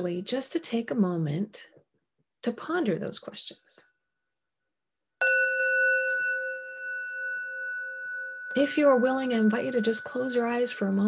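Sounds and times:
singing bowl ringing: 0:05.2 - 0:11.0.

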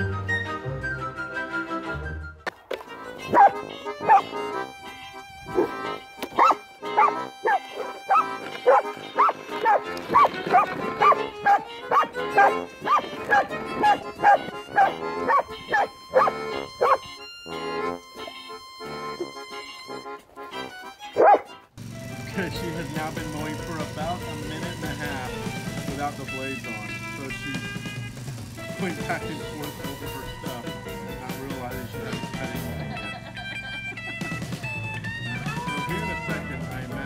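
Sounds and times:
background music: 0:00.0 - 0:37.0
dog barking: 0:03.3 - 0:04.3, 0:05.5 - 0:05.7, 0:06.3 - 0:17.1, 0:21.2 - 0:21.6.

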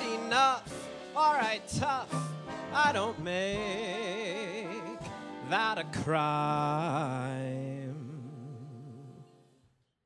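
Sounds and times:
big band playing: 0:00.0 - 0:09.3
man singing with vibrato: 0:00.0 - 0:09.5.

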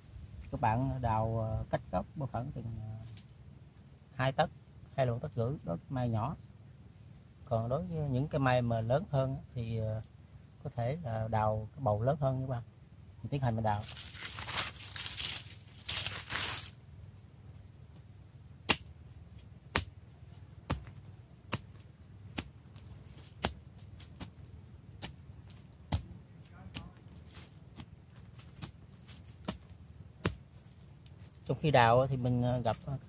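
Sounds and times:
knife scraping soil: 0:13.7 - 0:16.8, 0:22.3 - 0:25.7, 0:27.0 - 0:32.9
knife chopping into soil: 0:18.7 - 0:18.9, 0:19.7 - 0:19.9, 0:20.6 - 0:24.4, 0:25.0 - 0:26.1, 0:26.7 - 0:30.6.

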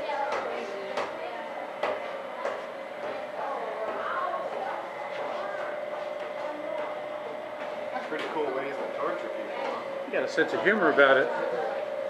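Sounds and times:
murmur of voices: 0:00.0 - 0:12.0
steady one-pitch hum: 0:00.0 - 0:12.0.

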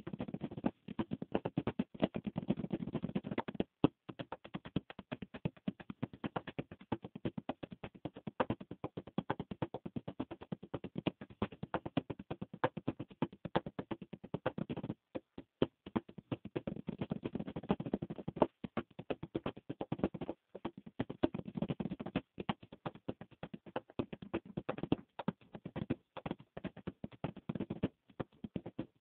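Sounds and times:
fast percussive tapping: 0:00.0 - 0:29.0.

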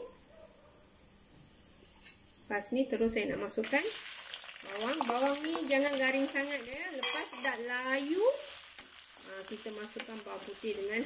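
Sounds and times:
spices sizzling in hot oil: 0:03.5 - 0:11.0.

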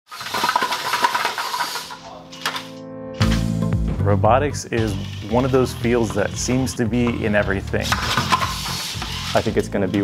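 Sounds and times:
fast clicking and rattling: 0:00.1 - 0:02.7
electric motors whining: 0:04.8 - 0:06.7, 0:07.5 - 0:09.6.

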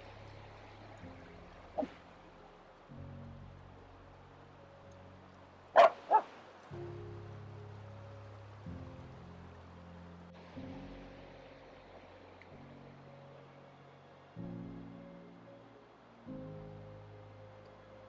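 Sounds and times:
slow low sustained chords: 0:00.0 - 0:05.7, 0:06.6 - 0:18.0
dog barking: 0:05.8 - 0:06.3.

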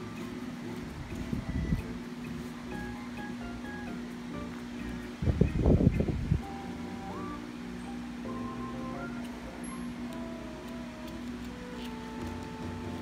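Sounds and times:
light melody over low drone: 0:00.0 - 0:13.0.

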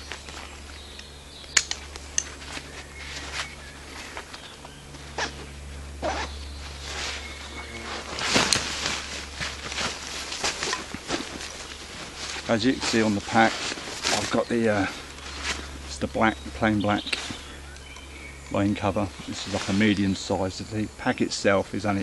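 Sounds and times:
fabric and straps rustling: 0:00.0 - 0:16.1
steady low hum: 0:00.0 - 0:22.0.

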